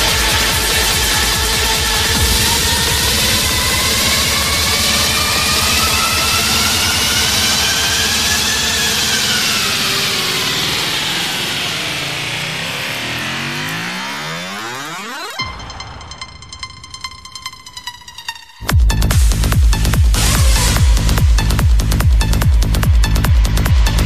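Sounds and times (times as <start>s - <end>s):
synth sweep: 0.0s - 24.0s
trance music: 0.0s - 24.0s.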